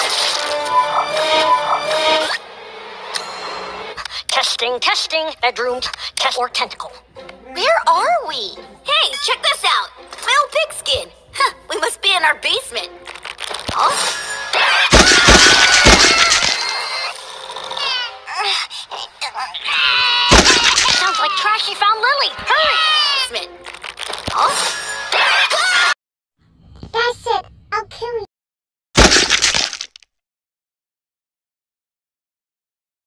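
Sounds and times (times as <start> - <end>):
cartoon girl screaming: 14.6 - 17.1, 19.6 - 21.5, 22.6 - 23.3, 25.2 - 25.9
baby crying: 19.6 - 21.5
glass shattering: 29.0 - 30.0.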